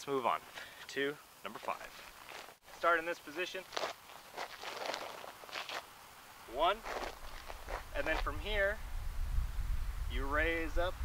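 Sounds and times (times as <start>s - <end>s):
footsteps crunching on gravel: 1.5s - 6.0s, 6.6s - 8.5s.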